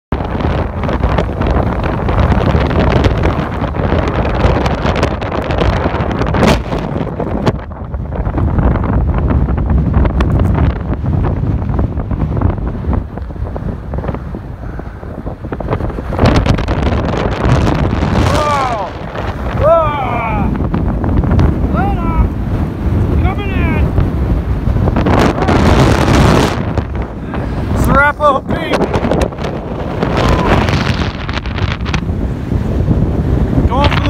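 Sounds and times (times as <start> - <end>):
wind buffeting microphone: 0.1 - 34.0.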